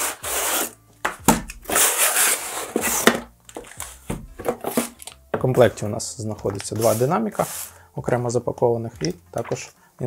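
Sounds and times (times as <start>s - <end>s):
cardboard boxes scraping on wood: 0.0s - 0.8s, 1.7s - 3.2s, 4.5s - 5.0s, 6.7s - 7.8s
box knock: 4.0s - 5.5s.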